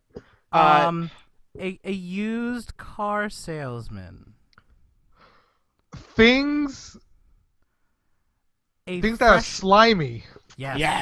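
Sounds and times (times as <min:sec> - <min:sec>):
person speaking: 0:00.6 - 0:04.4, 0:06.0 - 0:07.0, 0:08.9 - 0:11.0
soft breath out: 0:05.1 - 0:05.7.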